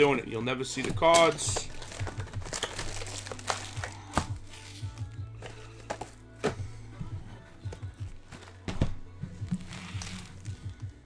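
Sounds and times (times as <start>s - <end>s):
quiet background music: 0.0s - 11.0s
cards being handled: 0.8s - 6.6s, 9.4s - 10.8s
card wrappers crinkling: 1.2s - 6.2s.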